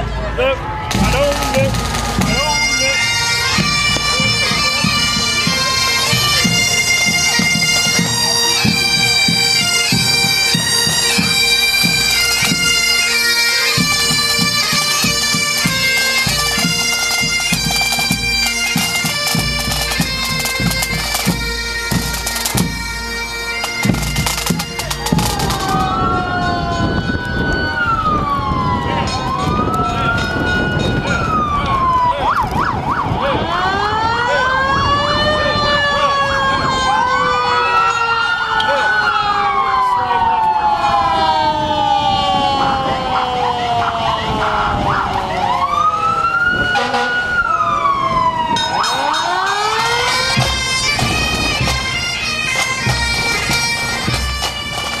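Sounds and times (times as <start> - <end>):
emergency sirens wailing: 0.0 - 55.0
bagpipes: 0.5 - 32.2, 42.3 - 55.0
pipe band drums: 0.9 - 26.2, 46.7 - 47.3, 48.6 - 55.0.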